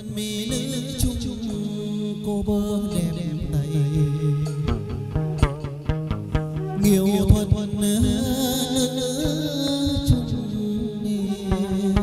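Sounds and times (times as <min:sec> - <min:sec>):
plucked string notes: 0:00.0 - 0:12.0.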